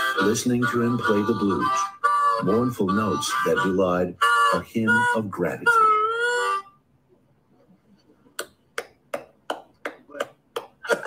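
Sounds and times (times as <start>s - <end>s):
blues harmonica: 0.0s - 6.9s
rhythmic hand claps: 8.4s - 11.0s.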